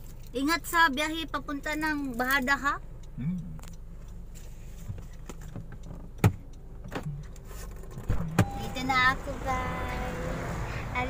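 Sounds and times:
car cabin engine hum: 0:00.0 - 0:11.0.

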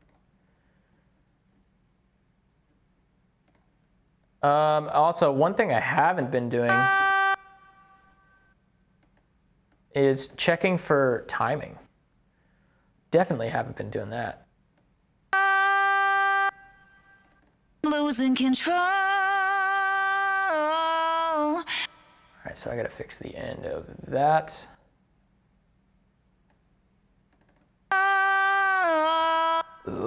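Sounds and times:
keyboard and mouse clicks: 0:00.0 - 0:00.3, 0:03.4 - 0:04.3, 0:09.0 - 0:09.9, 0:17.2 - 0:17.6, 0:27.3 - 0:27.7
pitch-corrected sung note: 0:06.6 - 0:08.5, 0:15.4 - 0:17.3, 0:27.9 - 0:30.0.

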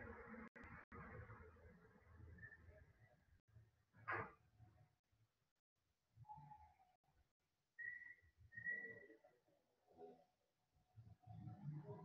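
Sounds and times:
faint whistling: 0:07.8 - 0:09.4.

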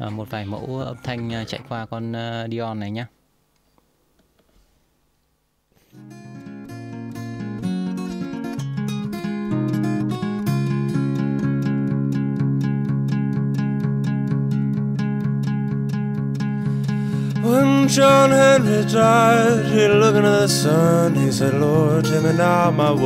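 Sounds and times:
acoustic guitar picking and strumming: 0:05.9 - 0:23.0.

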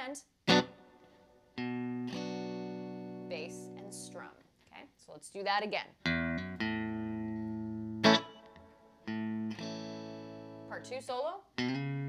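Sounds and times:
electric guitar chord strummed: 0:00.5 - 0:00.8, 0:01.6 - 0:03.3, 0:06.1 - 0:10.7, 0:11.6 - 0:12.0.

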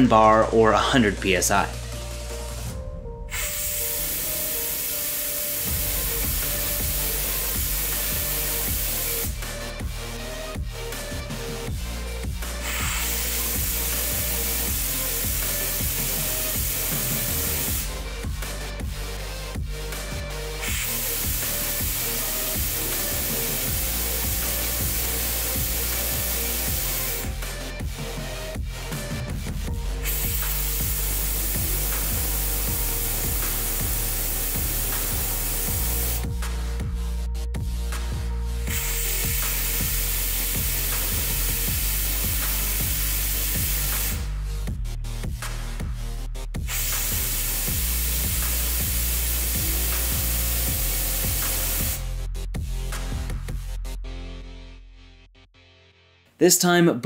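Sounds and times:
background music with steady beat: 0:00.0 - 0:57.0
compressed air hissing through turbine: 0:03.3 - 0:09.4, 0:12.6 - 0:18.0, 0:20.6 - 0:27.7, 0:29.9 - 0:36.3, 0:38.7 - 0:44.3, 0:46.6 - 0:52.1.

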